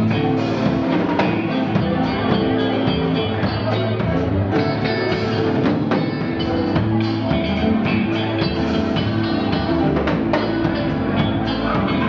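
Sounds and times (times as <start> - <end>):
acoustic and electric guitars: 0.0 - 12.0
drum kit hits: 0.0 - 12.0.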